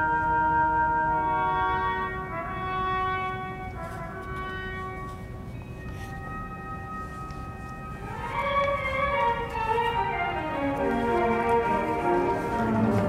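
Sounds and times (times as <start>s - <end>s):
symphony orchestra playing: 0.0s - 13.0s.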